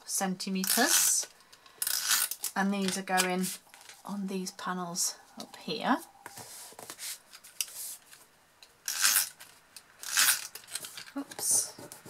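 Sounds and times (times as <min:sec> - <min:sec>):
paper sliding and rustling: 0:06.3 - 0:08.2.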